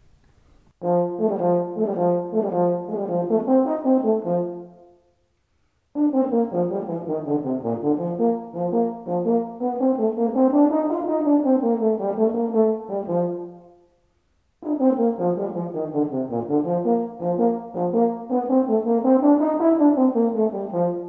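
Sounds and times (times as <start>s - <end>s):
euphonium playing a march: 0.8s - 4.8s, 6.0s - 13.6s, 14.6s - 21.0s.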